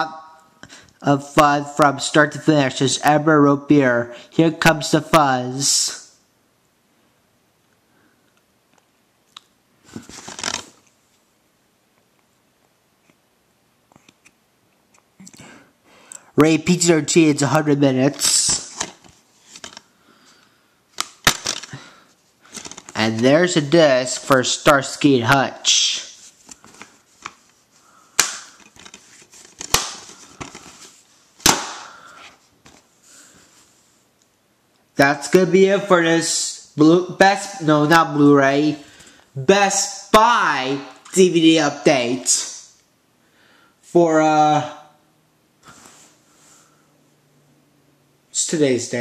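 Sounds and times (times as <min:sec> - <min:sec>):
plastic case clacks: 0:28.2 - 0:30.8.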